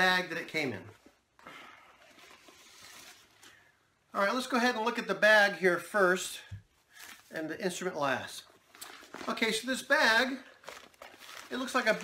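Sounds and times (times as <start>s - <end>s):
nylon bag rustling: 8.6s - 12.0s.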